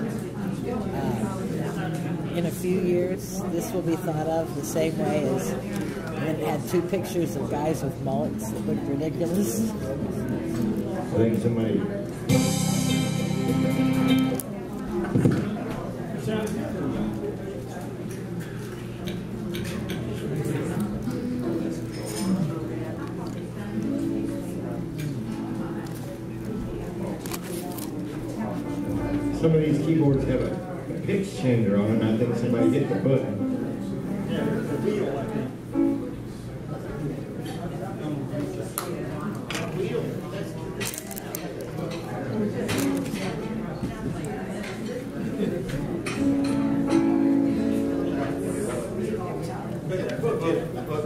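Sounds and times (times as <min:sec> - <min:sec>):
indistinct chatter: 0:00.0 - 0:51.0
band holding a chord: 0:12.3 - 0:14.4
short plucked note: 0:12.3 - 0:14.4.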